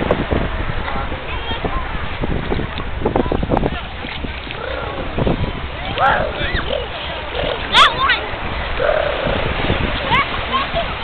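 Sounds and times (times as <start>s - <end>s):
wind and waves rushing: 0.0s - 11.0s
water splashing: 0.3s - 11.0s
children calling out: 5.9s - 11.0s.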